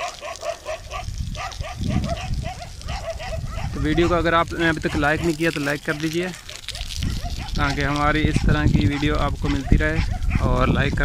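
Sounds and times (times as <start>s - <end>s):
animal yelping calls: 0.0s - 4.2s, 4.9s - 7.6s.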